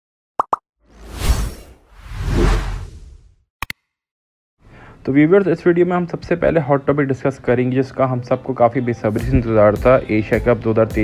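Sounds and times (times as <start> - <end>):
whoosh: 0.9 - 3.4.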